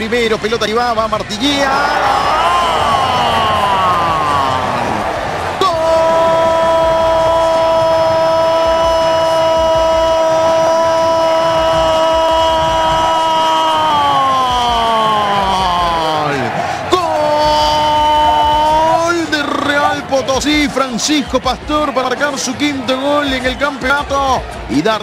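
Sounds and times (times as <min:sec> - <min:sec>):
commentator shouting goal cry: 0:01.3 - 0:25.0.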